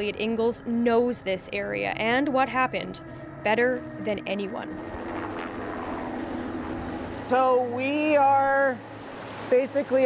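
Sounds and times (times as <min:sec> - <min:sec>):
helicopter engine and rotor: 0:00.0 - 0:09.5.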